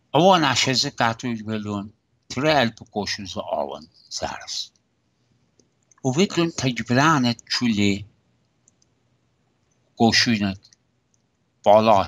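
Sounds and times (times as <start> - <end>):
faint hiss: 0.0 - 4.7, 6.0 - 8.0, 10.0 - 10.6
tiny clicks: 5.5 - 6.1, 8.4 - 9.0, 10.6 - 11.4.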